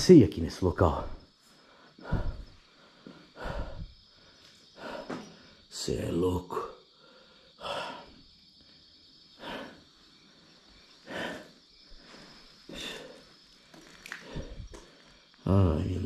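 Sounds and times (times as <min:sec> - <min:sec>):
person breathing close to microphone: 0:01.0 - 0:05.7, 0:09.3 - 0:09.9, 0:11.0 - 0:13.4, 0:14.1 - 0:15.4.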